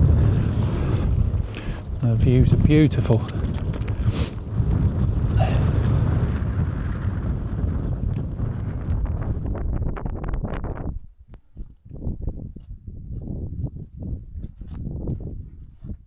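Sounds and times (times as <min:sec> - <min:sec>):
light wind gusts: 0:00.0 - 0:16.0
wind buffeting microphone: 0:00.0 - 0:16.0.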